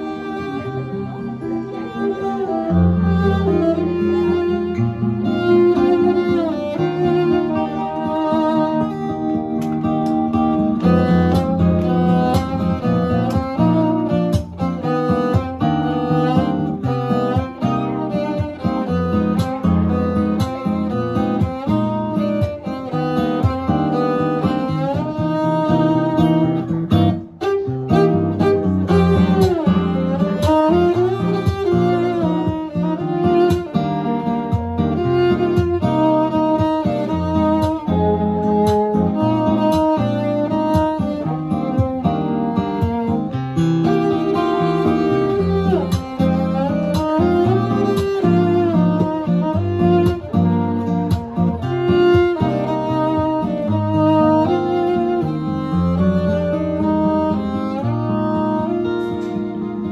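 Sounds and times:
acoustic guitar chords: 0.0 - 59.9
bowed cello melody: 0.0 - 59.9.

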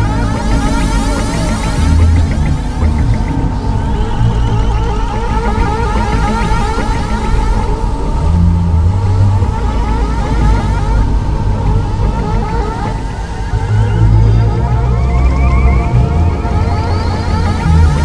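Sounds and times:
heavy bass drone: 0.0 - 18.0
rising synth sweeps: 0.0 - 18.0
steady high tone: 0.0 - 18.0.

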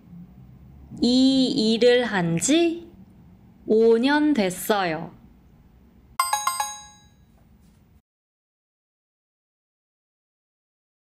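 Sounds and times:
bell-like chime: 6.2 - 7.3.

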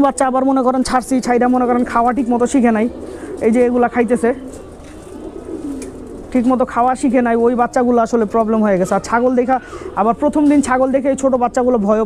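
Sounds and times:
man speaking: 0.0 - 4.5, 6.3 - 12.0
pigeons cooing: 0.0 - 12.0.

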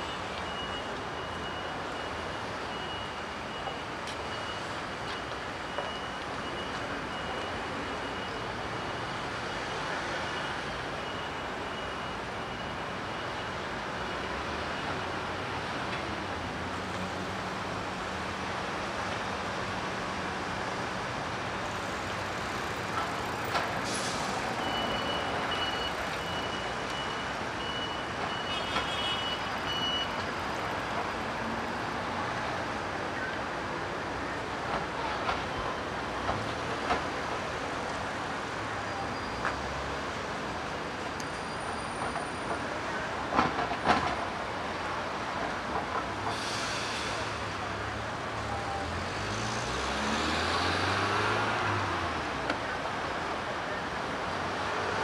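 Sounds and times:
passing cars and scooters: 47.2 - 55.0.

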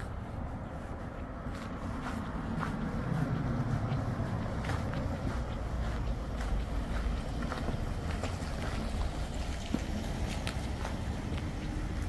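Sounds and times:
car driving slowly past: 0.0 - 12.0.

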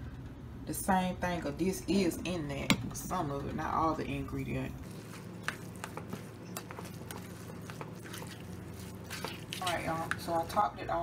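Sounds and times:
steady low hum: 0.0 - 11.0
utensil stirring wet rice: 4.8 - 10.6.

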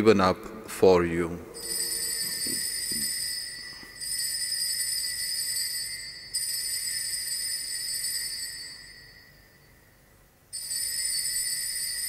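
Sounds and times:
altar bell ringing: 1.6 - 12.0.

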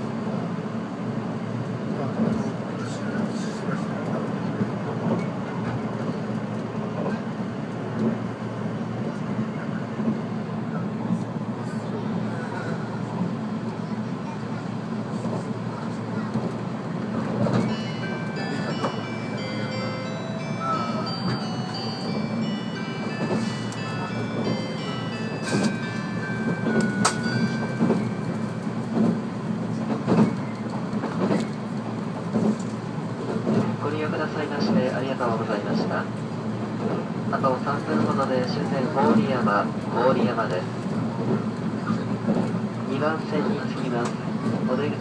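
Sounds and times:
electric train running: 15.2 - 33.8
music-box chime melody: 17.6 - 28.6.

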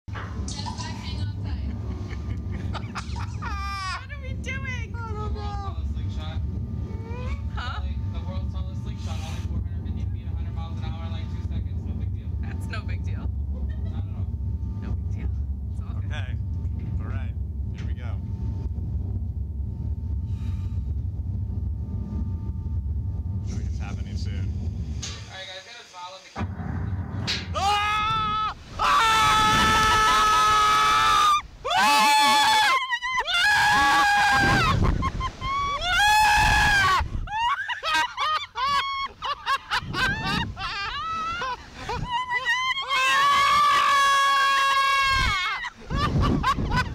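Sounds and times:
steady low rumble: 0.1 - 25.4, 26.4 - 31.7, 33.1 - 42.9, 45.0 - 46.9
people laughing: 0.5 - 4.2, 13.6 - 14.3, 31.8 - 36.0, 36.9 - 46.9
riders screaming: 27.6 - 34.8, 35.4 - 37.8, 40.7 - 45.8.

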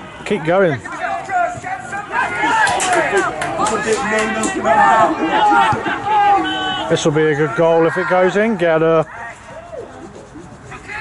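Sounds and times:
distant men shouting: 0.9 - 9.9.

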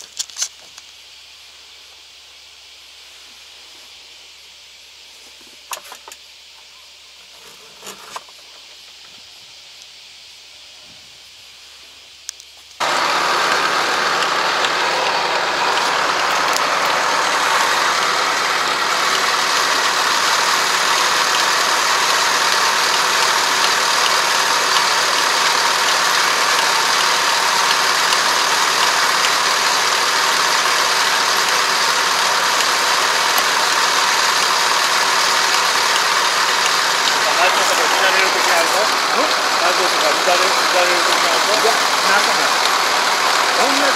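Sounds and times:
combine harvester engine running: 12.3 - 43.9.

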